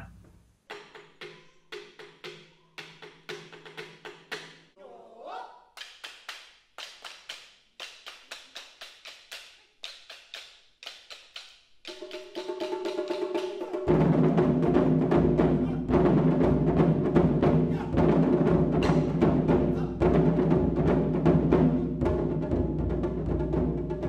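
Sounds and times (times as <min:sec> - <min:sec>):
wooden drumsticks clicking: 0:05.8 - 0:12.2.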